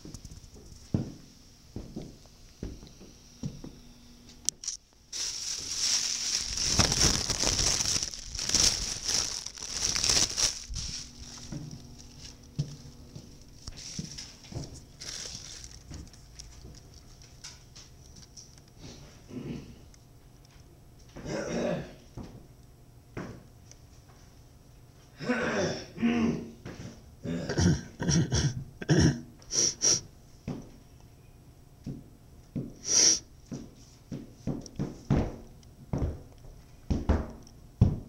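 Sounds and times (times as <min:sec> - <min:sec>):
cloth rustling against microphone: 0:04.6 - 0:17.0.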